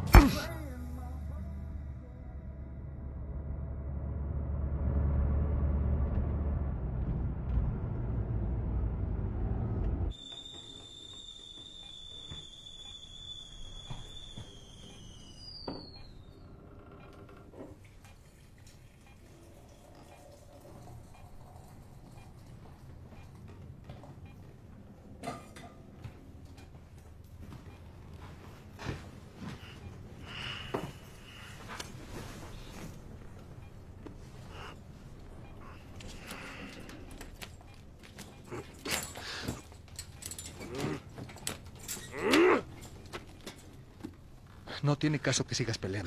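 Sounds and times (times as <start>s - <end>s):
loud deep rumble: 1.2s - 10.1s
high steady ringing tone: 10.1s - 16.4s.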